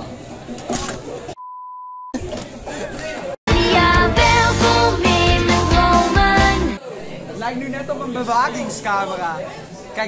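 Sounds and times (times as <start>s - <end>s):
high-pitched censor bleep: 1.4s - 2.2s
faint voices in a hall: 2.2s - 3.4s, 6.8s - 10.0s.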